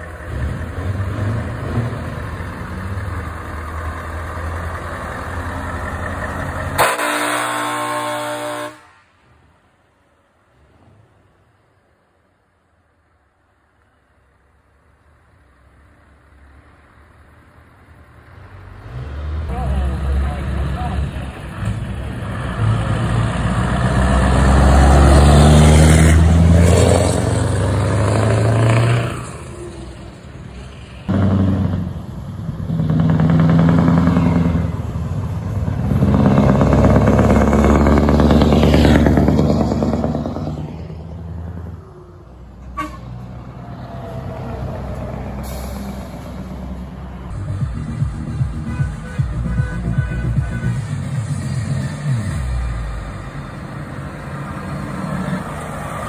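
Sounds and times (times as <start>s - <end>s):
diesel trucks driving past: 0.0s - 56.0s.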